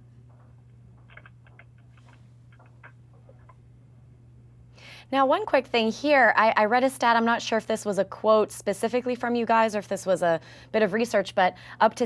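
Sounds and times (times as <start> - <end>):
low electrical hum: 0.0 - 12.0
keyboard keys tapping: 0.3 - 3.6.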